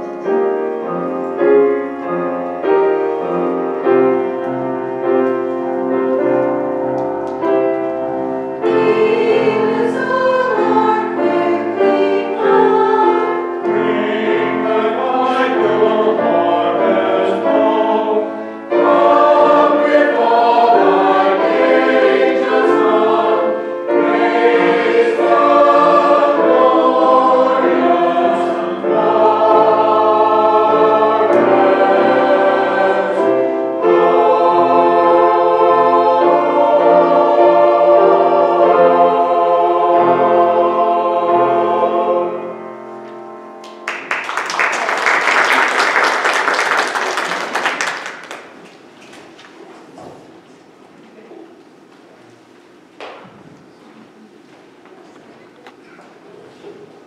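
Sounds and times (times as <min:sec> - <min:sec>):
choir singing an anthem: 0:07.4 - 0:43.0.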